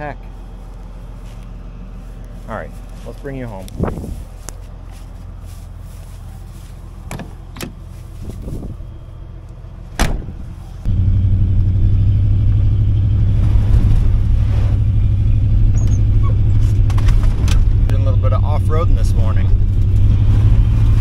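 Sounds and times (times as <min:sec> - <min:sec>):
truck engine idling: 0:00.0 - 0:17.0
engine and road drone inside cab: 0:00.0 - 0:21.0.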